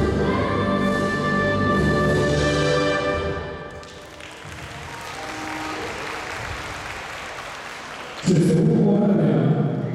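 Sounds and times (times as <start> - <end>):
audience applauding: 3.7 - 8.5.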